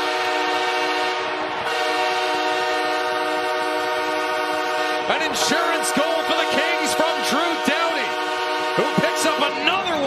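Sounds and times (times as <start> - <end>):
arena goal horn blast: 0.0 - 10.0
crowd cheering: 0.0 - 10.0.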